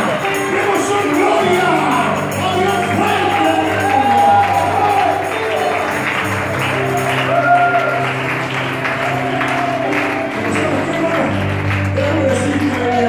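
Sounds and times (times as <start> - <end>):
church worship music: 0.0 - 13.0
hands clapping: 0.0 - 13.0.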